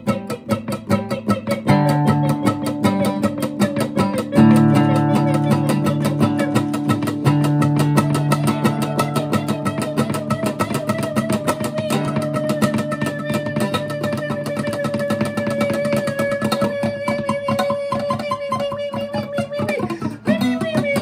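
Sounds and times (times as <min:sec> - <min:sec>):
acoustic guitar music: 0:00.0 - 0:21.0.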